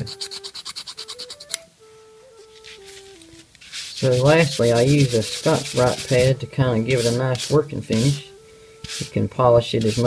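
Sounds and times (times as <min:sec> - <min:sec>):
hand file scraping metal: 0:00.0 - 0:01.6, 0:03.6 - 0:10.0
soft tune of held notes: 0:00.0 - 0:03.5, 0:04.8 - 0:09.6.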